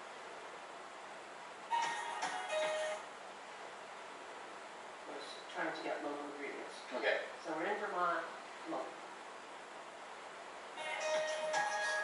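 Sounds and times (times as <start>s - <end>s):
faint room hiss: 0.0s - 12.0s
television musical tone: 1.6s - 3.2s, 10.6s - 12.0s.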